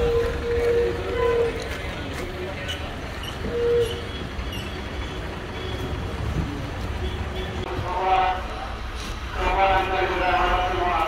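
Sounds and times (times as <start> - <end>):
idling bus engines rumbling: 0.0 - 11.0.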